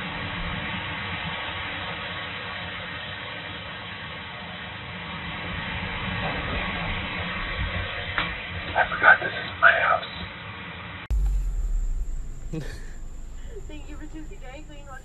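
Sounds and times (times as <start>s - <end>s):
white noise hiss: 11.1s - 15.0s.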